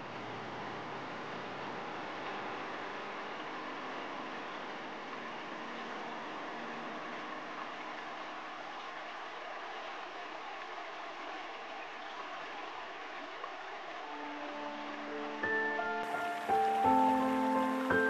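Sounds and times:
river rushing over rocks: 0.1s - 18.0s.

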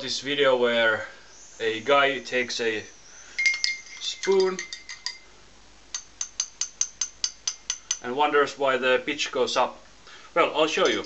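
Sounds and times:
spoon tapping cup: 3.4s - 5.2s, 5.9s - 8.0s.

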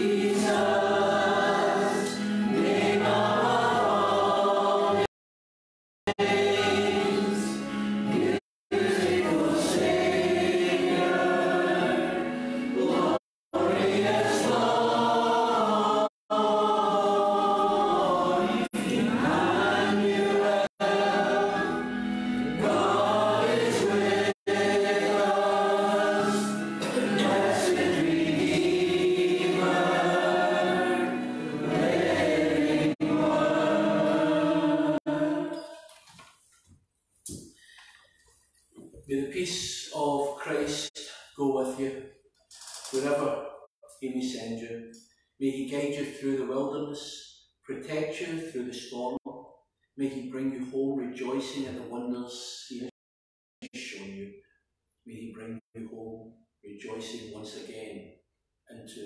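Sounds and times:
choir singing a hymn over speaker: 0.0s - 5.1s, 6.1s - 35.6s.

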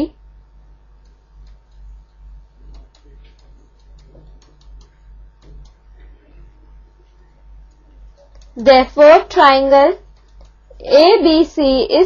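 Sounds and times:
steady low hum: 0.0s - 12.0s
stylus ticking on pen tablet: 1.0s - 5.9s, 10.0s - 10.9s.

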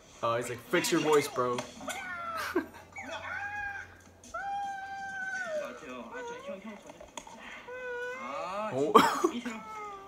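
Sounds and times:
man making cat-like squeals: 0.7s - 6.6s.

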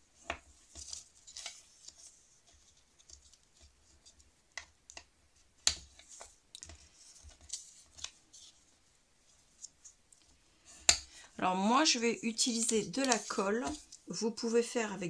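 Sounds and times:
paper rustling: 0.4s - 4.2s, 5.9s - 10.4s, 12.3s - 14.1s
bone folder scraping paper: 12.4s - 14.0s.

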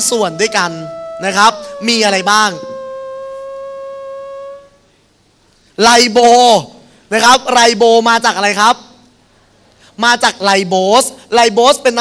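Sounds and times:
steady whistle-like tone: 0.0s - 5.0s.

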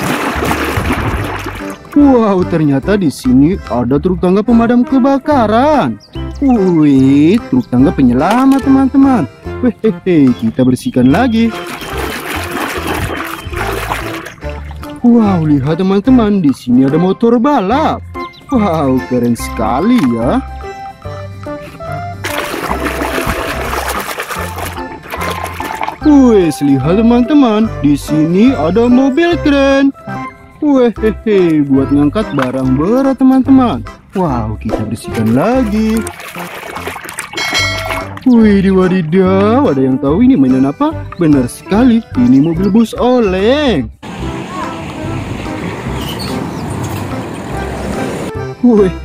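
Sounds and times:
hand scrubbing toy in water: 0.0s - 2.0s, 11.3s - 15.0s, 22.2s - 26.4s, 35.1s - 38.2s
water sloshing and splashing: 0.0s - 2.1s, 11.1s - 15.2s, 21.8s - 26.6s, 34.7s - 38.4s
background music with low bass: 0.0s - 49.0s.

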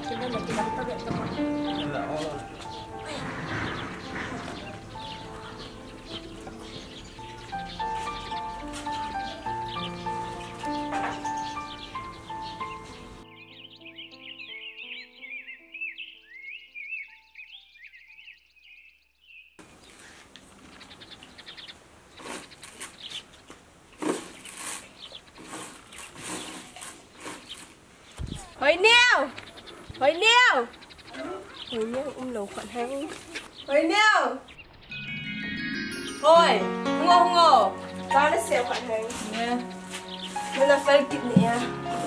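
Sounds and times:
soft background music: 0.0s - 17.6s, 34.9s - 42.0s
high bird chirping: 0.0s - 23.4s, 27.4s - 41.9s
scattered knocks and taps: 0.4s - 6.8s.

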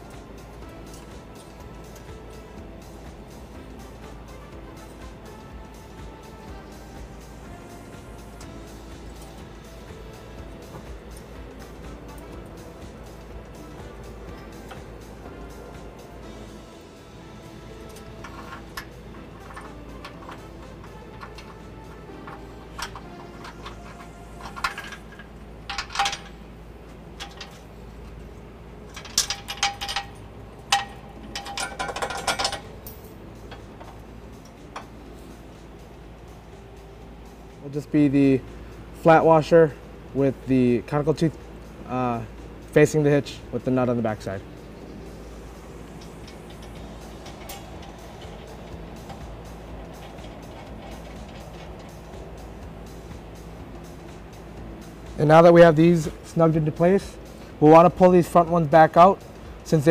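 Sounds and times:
background music: 0.0s - 59.9s
metal bolts and nuts clinking: 0.1s - 2.2s, 13.5s - 15.6s, 17.5s - 28.2s, 28.8s - 34.9s, 45.4s - 54.4s.

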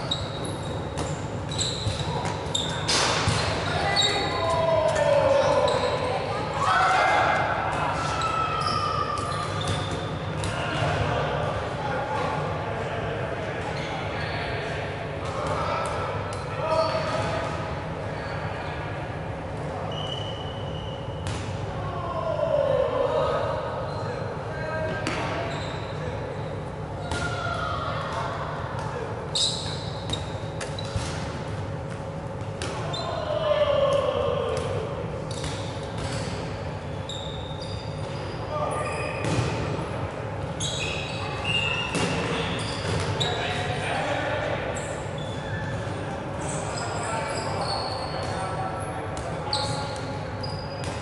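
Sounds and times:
sneaker squeaks on wooden court: 0.0s - 6.1s, 8.0s - 10.5s, 19.9s - 21.4s, 25.0s - 26.1s, 29.3s - 31.4s, 35.3s - 36.5s, 37.1s - 39.7s, 40.5s - 43.6s, 44.8s - 51.0s
players shouting: 32.8s - 35.1s.

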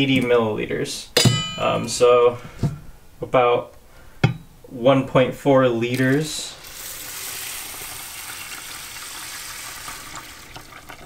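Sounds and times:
water pouring into a pot: 5.9s - 11.0s.

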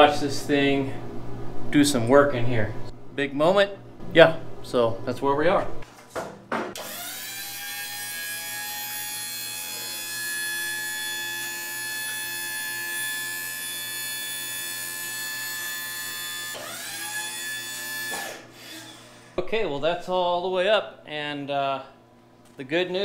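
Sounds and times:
hydraulic pump motor whine: 6.8s - 7.6s, 10.6s - 19.4s.

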